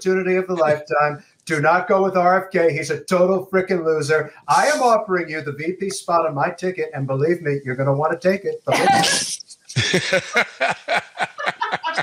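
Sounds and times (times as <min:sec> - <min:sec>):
people laughing hard: 0:08.7 - 0:12.0.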